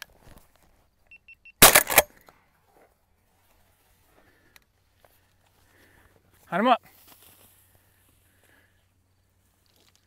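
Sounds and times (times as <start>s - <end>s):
shotgun blast: 1.6s - 2.1s
faint rustling in grass: 2.4s - 10.0s.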